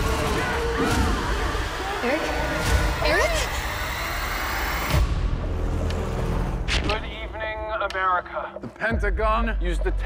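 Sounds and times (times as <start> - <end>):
low rumbling trailer music: 0.0 - 10.0.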